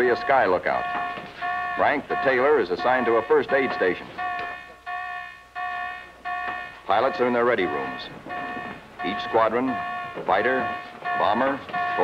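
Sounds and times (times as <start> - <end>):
bell-like alarm tone: 0.0 - 12.0.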